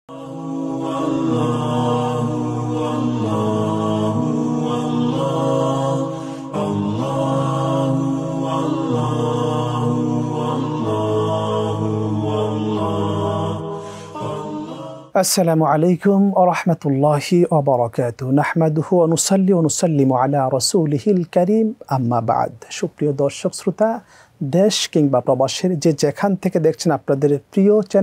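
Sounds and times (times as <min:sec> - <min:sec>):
voice chanting long notes: 0:00.1 - 0:15.2.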